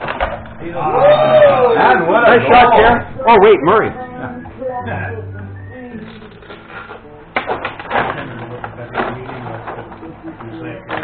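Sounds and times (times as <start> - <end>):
table hockey clacks and knocks: 7.4 - 11.0.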